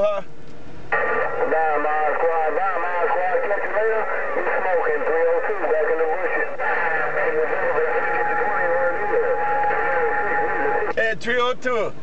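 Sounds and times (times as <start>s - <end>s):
muffled voices over radio speaker: 0.9s - 11.9s.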